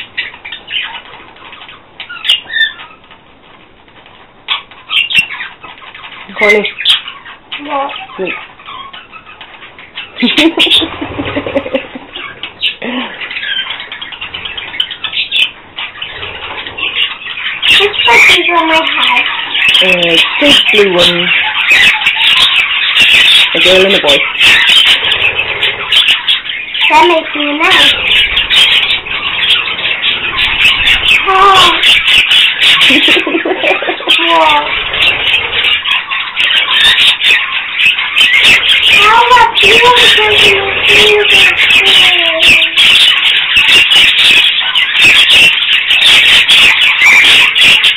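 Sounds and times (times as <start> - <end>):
budgerigars chattering and chirping: 0.0 - 47.9.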